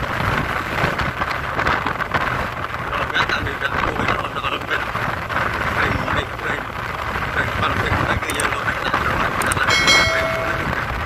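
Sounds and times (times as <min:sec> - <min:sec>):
wind: 0:00.0 - 0:11.0.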